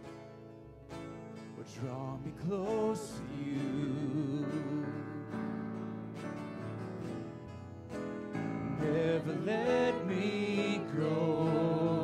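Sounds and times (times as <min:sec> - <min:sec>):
worship band with acoustic guitar: 0:00.0 - 0:12.0
people singing: 0:01.8 - 0:05.3, 0:08.6 - 0:12.0.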